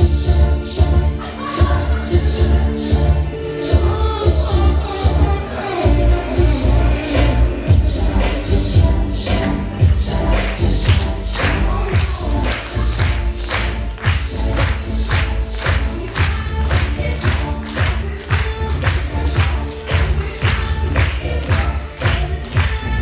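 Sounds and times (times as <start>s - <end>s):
pop music with singing: 0.0s - 23.0s.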